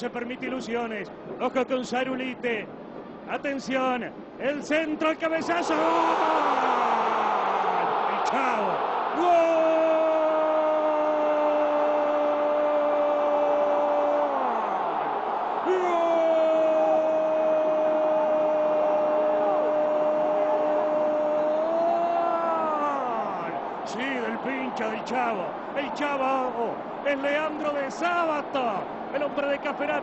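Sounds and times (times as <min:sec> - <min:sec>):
stadium crowd noise: 0:00.0 - 0:30.0
commentator shouting: 0:05.2 - 0:10.9.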